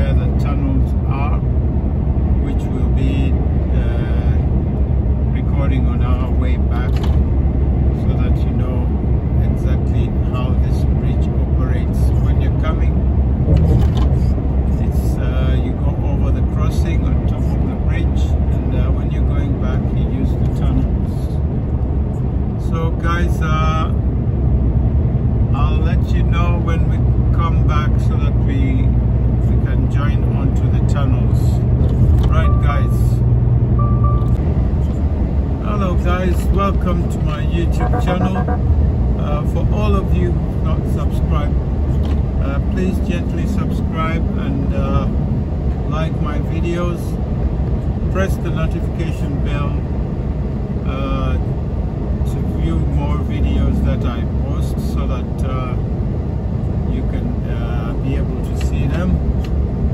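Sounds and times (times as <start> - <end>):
tyres on motorway: 0.0 - 59.9
lorry engine drone: 37.5 - 39.5.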